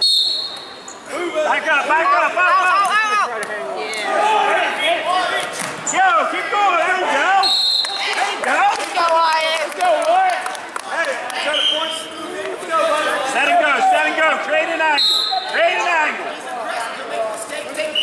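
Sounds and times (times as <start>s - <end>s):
voices shouting in a gym hall: 0.0s - 18.0s.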